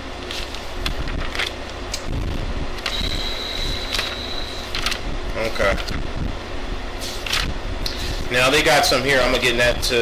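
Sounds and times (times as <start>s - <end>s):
low background hum: 0.0s - 10.0s
book pages rustling: 0.2s - 1.5s
thin high tone: 2.9s - 4.7s.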